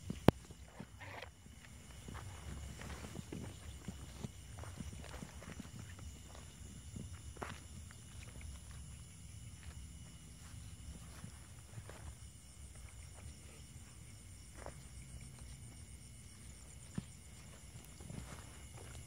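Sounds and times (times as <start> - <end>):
footsteps through dry brush: 0.1 - 13.0, 14.5 - 19.0.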